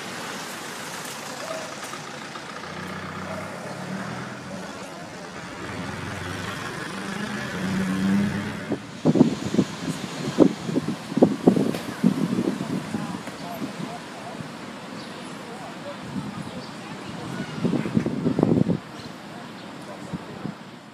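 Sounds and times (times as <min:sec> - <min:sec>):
vehicle engine humming: 0:00.0 - 0:16.3.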